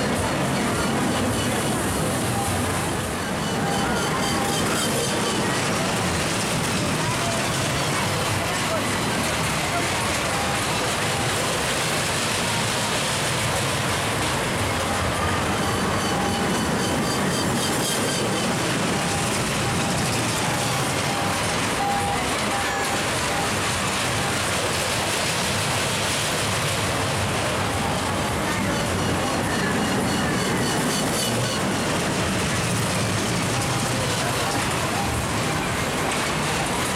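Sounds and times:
crowd voices: 0.0 - 36.9
roller coaster on steel track: 0.0 - 36.9.

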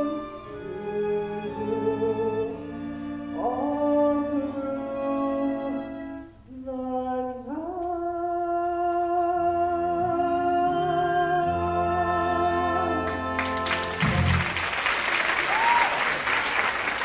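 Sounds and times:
orchestral accompaniment: 0.0 - 6.4, 9.9 - 14.8
person singing: 3.4 - 13.6.

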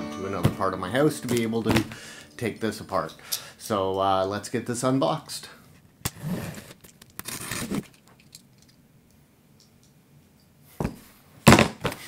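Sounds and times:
utility knife slicing packing tape: 6.1 - 7.9.

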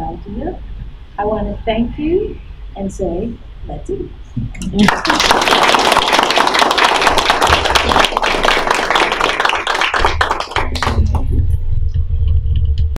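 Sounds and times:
audience applauding: 4.8 - 11.4
low rumble: 10.0 - 13.0.

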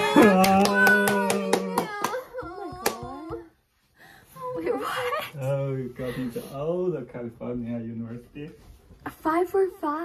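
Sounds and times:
long held shout: 0.0 - 2.2
people cheering: 0.0 - 3.4
hand claps: 0.0 - 3.5.

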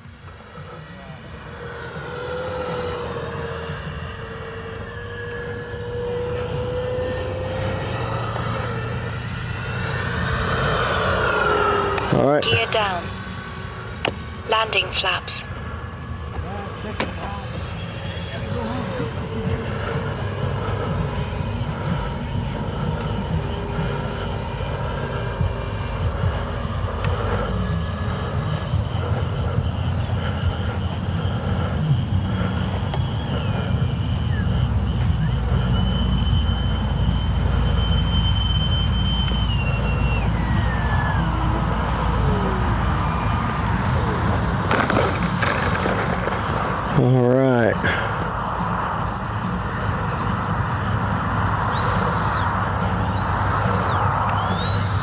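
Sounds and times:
electric ducted fans whining: 0.0 - 55.0.

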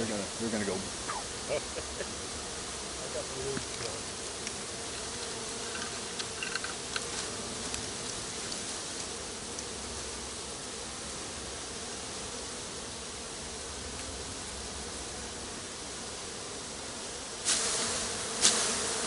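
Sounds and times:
bees buzzing: 0.0 - 19.0.

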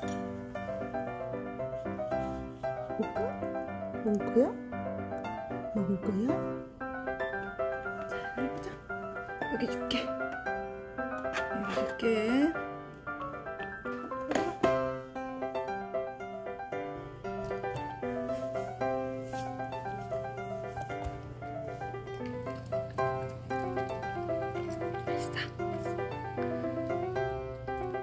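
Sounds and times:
light keyboard tune: 0.0 - 28.0.

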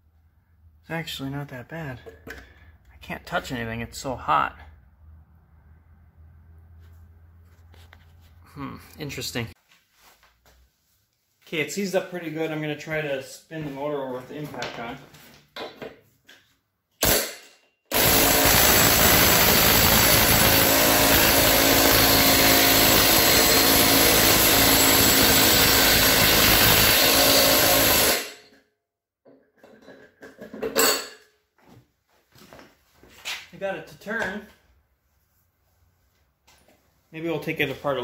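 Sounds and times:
impact driver hammering: 17.0 - 28.4.

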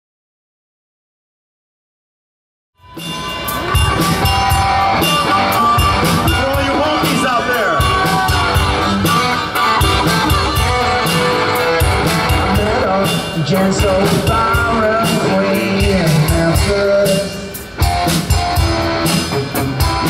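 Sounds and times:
bass guitar: 2.8 - 20.0
drums with steady cymbal beat: 2.8 - 20.0
electric guitar: 2.8 - 20.0.

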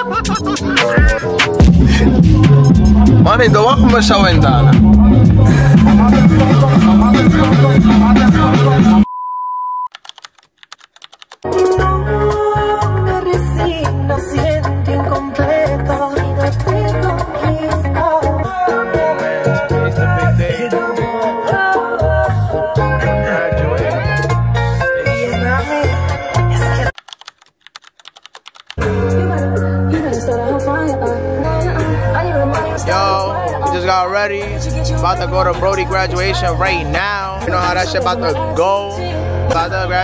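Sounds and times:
music: 0.0 - 9.1, 11.4 - 26.9, 28.8 - 40.0
keyboard typing clicks: 9.9 - 11.4, 27.0 - 28.8.

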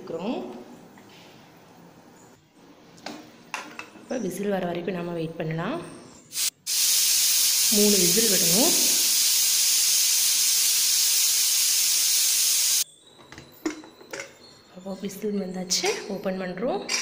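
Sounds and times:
pressure cooker steam hiss: 6.4 - 12.8.

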